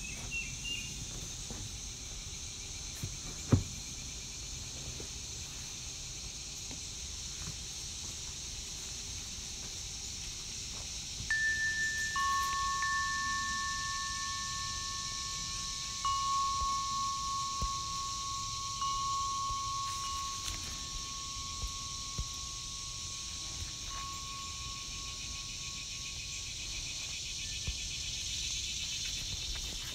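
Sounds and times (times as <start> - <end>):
steady high hiss: 0.0 - 29.9
chime tones ringing: 11.3 - 27.1.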